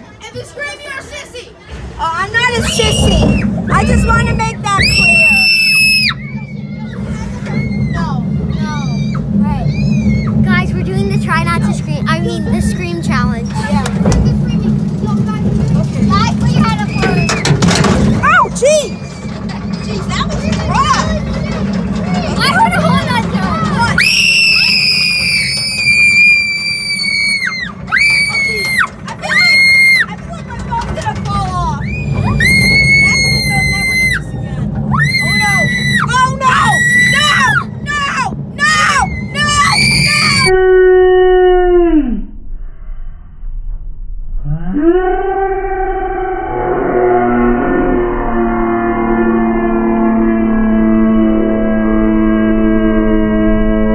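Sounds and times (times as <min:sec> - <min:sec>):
roller coaster rumbling on track: 0:00.0 - 0:42.5, 0:43.4 - 0:53.9
falling wail: 0:31.8 - 0:42.4.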